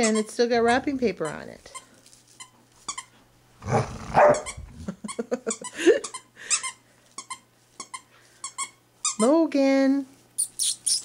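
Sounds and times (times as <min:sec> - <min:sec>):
squeaky toy squeaks: 0:00.0 - 0:03.1, 0:04.3 - 0:04.7, 0:05.5 - 0:09.4, 0:10.4 - 0:11.0
dog growling: 0:03.6 - 0:05.0.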